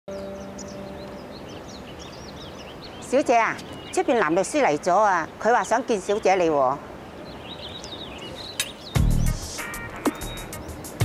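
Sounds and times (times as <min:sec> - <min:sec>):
outdoor background hiss: 0:00.1 - 0:11.0
small birds chirping: 0:00.1 - 0:11.0.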